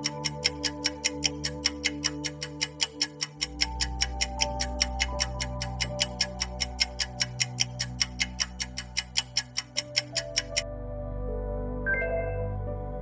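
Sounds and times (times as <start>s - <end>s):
countdown timer ticking: 0.0s - 10.6s
soft background music: 0.0s - 13.0s.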